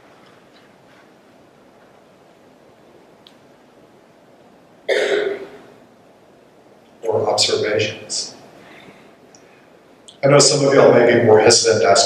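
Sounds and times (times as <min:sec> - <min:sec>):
person coughing: 0:04.9 - 0:05.7.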